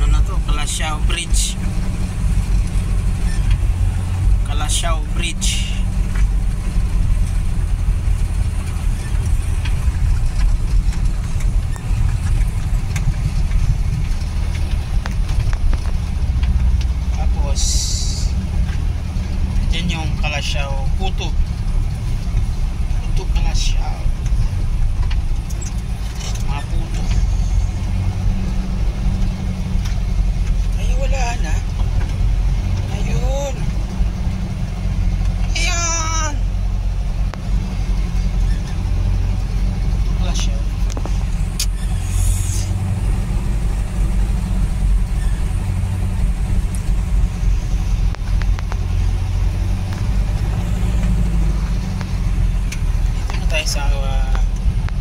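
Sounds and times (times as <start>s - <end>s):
vehicle engine and road rumble: 0.0s - 55.0s.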